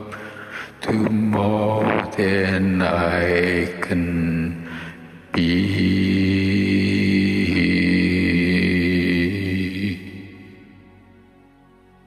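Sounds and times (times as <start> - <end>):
karaoke backing track: 0.8 - 3.9.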